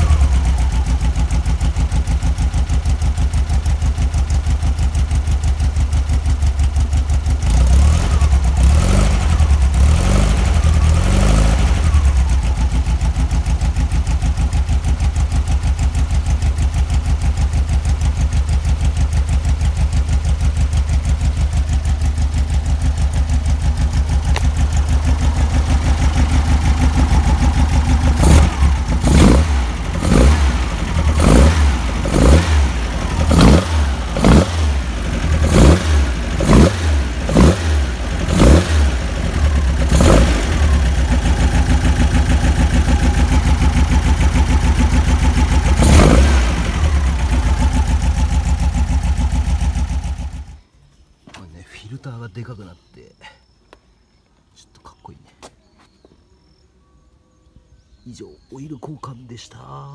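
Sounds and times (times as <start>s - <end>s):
car engine idling and revving: 0.0s - 50.7s.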